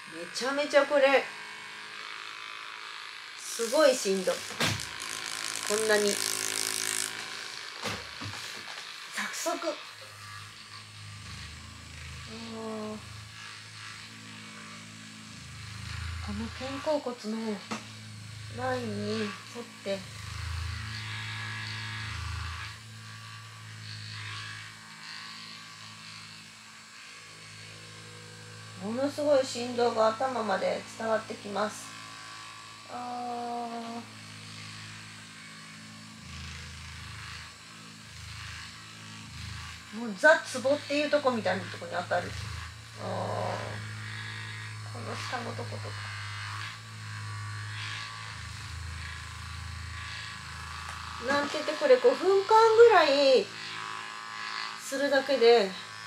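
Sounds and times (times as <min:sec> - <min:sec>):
massage gun buzzing: 0:00.0 - 0:56.0.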